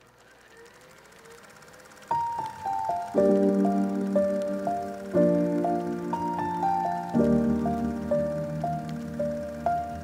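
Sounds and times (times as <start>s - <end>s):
mechanical whirr: 0.0s - 10.0s.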